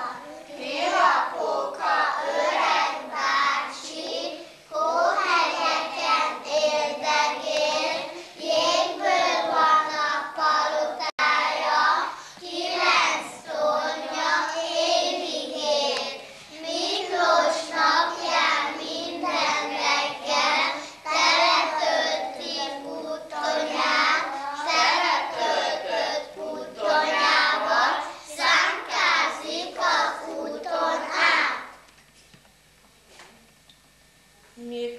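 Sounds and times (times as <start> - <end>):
children singing: 0.0 - 31.8.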